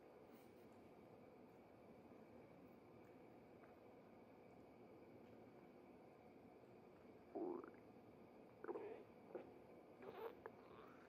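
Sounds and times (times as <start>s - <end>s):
stomach rumbling gurgle: 7.2s - 11.0s.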